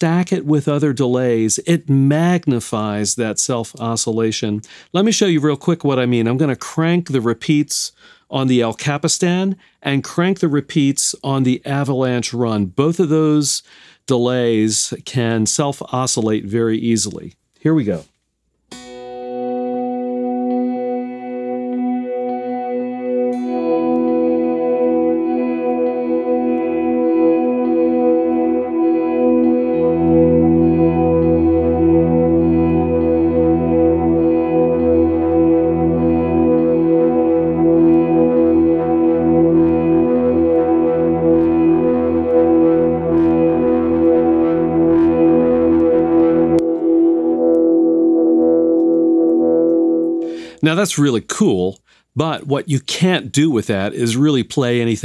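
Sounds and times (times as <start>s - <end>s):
electric guitar with delay: 18.7s - 50.6s.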